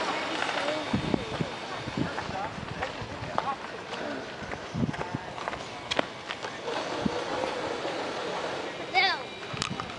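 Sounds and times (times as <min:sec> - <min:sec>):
outdoor noise: 0:00.0 - 0:09.9
voices chattering: 0:00.0 - 0:09.9.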